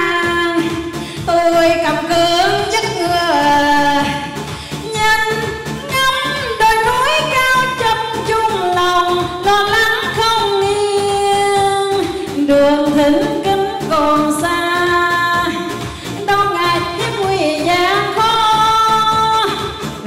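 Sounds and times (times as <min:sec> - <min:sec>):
woman singing into microphone: 0:00.0 - 0:20.0.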